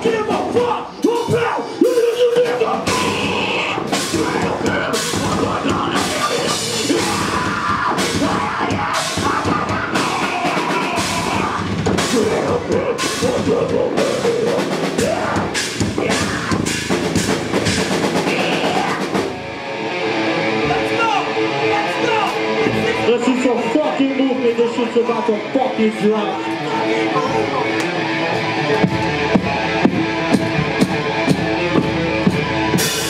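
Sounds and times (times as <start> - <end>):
heavy rock band playing: 0.0 - 33.0.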